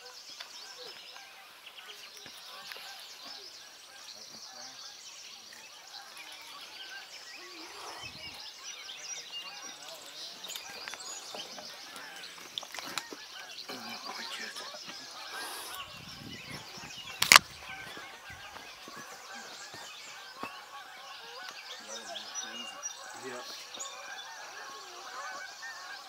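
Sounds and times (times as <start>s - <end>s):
birds chirping and calling: 0.0s - 26.0s.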